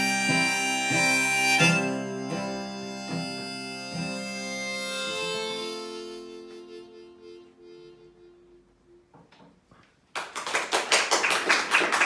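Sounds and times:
audience applauding: 10.1 - 12.0.

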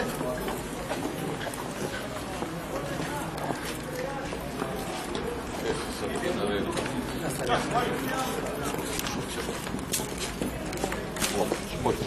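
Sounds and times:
footsteps on paved street: 0.0 - 12.0
people talking indistinctly: 0.0 - 12.0.

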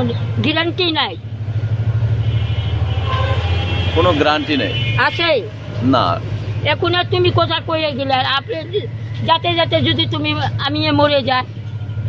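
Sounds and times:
low vehicle rumble: 0.0 - 12.0
faint high horn-like tone: 2.3 - 5.0.

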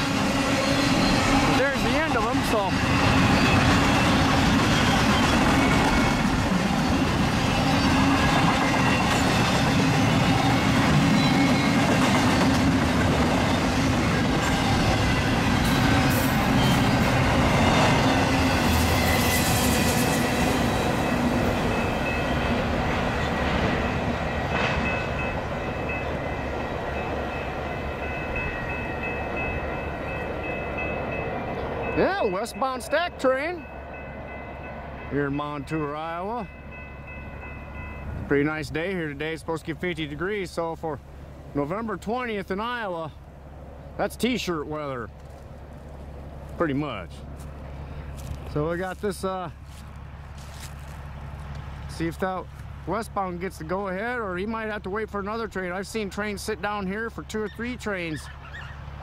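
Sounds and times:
freight train wheels rumbling on rail: 0.0 - 59.0.

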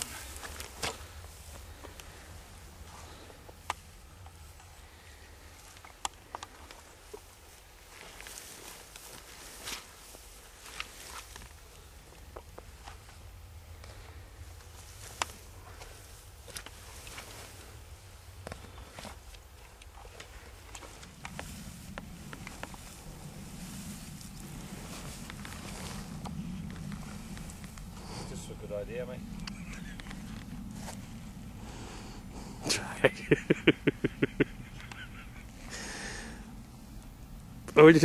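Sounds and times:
carcass dragged through grass: 0.0 - 3.4, 6.5 - 32.2
footsteps in dry grass: 0.0 - 32.4
low rumble: 11.4 - 37.8
light crackles and knocks: 18.3 - 28.5.

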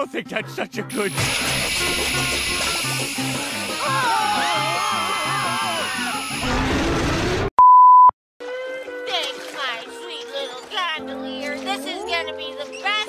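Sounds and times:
steady single-pitch beep: 7.6 - 8.1.

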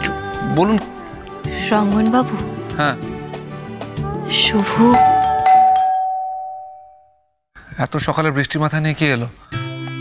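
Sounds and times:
two-tone doorbell chime: 4.9 - 7.1.

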